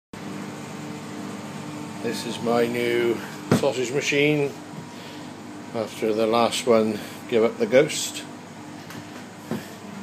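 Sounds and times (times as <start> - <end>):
machine hum: 0.2 - 10.0.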